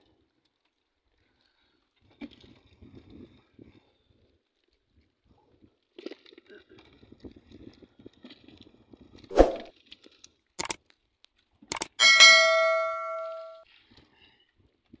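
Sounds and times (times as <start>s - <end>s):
notification bell ding: 12.0s - 13.6s.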